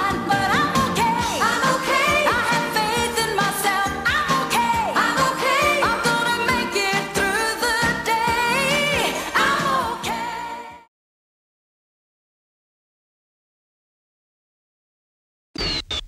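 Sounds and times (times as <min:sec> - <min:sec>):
keyboard-driven band: 0:00.0 - 0:10.8
woman singing pop song: 0:00.0 - 0:10.9.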